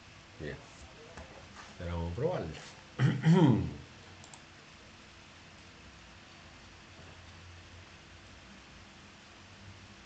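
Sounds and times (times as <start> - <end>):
man speaking: 1.8 - 3.9
computer mouse clicks: 4.2 - 4.5.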